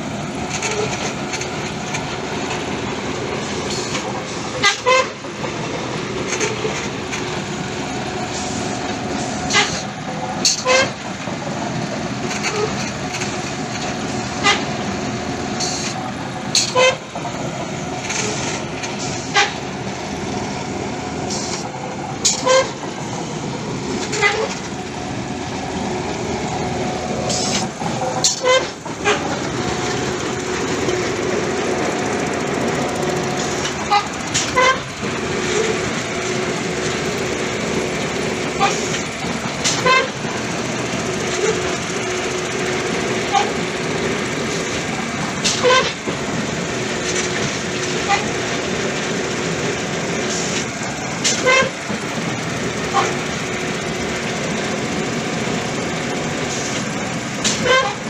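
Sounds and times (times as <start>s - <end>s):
pile-drilling rig running: 0.0s - 58.0s.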